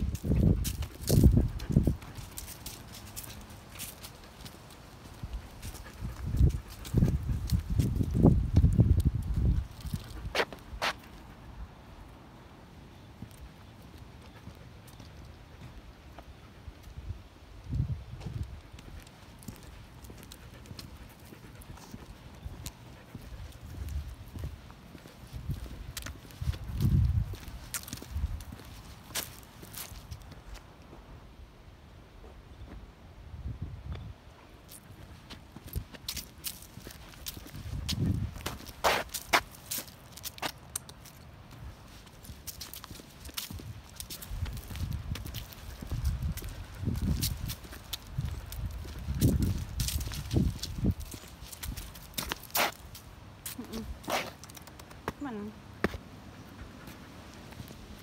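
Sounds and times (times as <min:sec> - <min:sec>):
footsteps on leaves and dirt: 0:00.0 - 0:11.0, 0:18.2 - 0:30.7, 0:34.7 - 0:54.6.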